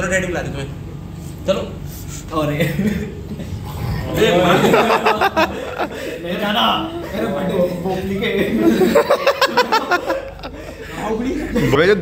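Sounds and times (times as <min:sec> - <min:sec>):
people laughing: 0:02.6 - 0:12.0.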